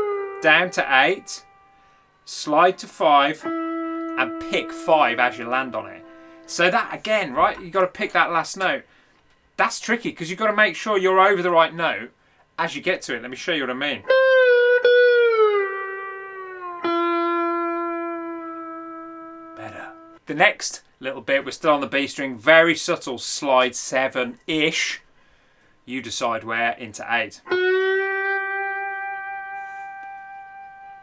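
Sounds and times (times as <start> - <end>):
slide electric guitar notes: 0.0 - 7.9, 14.0 - 20.2, 27.4 - 31.0.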